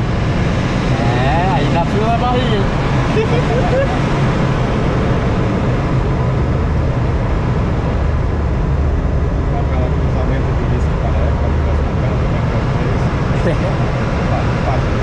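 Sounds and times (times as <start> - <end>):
airflow rushing around glider: 0.0 - 15.0
low rumble: 0.0 - 15.0.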